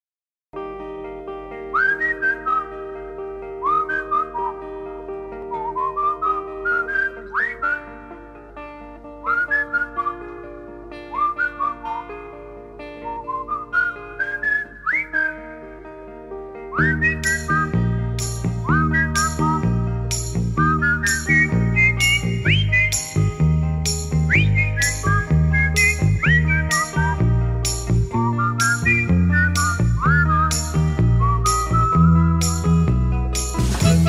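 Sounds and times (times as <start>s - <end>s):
instrumental backing music: 0.6s - 34.0s
whistled pop melody: 1.6s - 8.2s, 9.2s - 15.9s, 16.6s - 34.0s.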